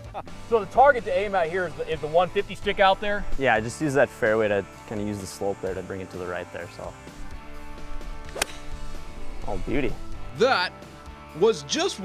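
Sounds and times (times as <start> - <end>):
golf club striking ball: 7.4 - 9.4.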